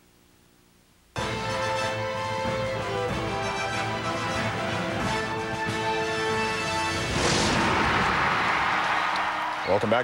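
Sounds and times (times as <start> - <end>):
loud crashing hit: 7.0 - 9.1.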